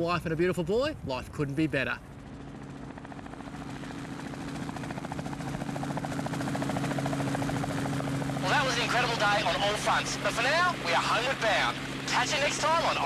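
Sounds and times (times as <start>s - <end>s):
helicopter engine drone: 1.4s - 13.0s
helicopter rotor blades beating: 1.4s - 13.0s.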